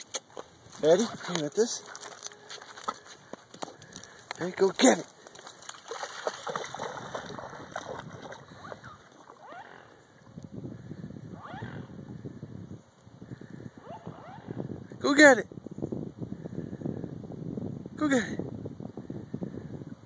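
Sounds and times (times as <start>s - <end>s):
dog splashing through water: 0.8s - 3.1s, 4.4s - 9.5s
short animal calls: 8.6s - 10.2s, 11.3s - 12.0s.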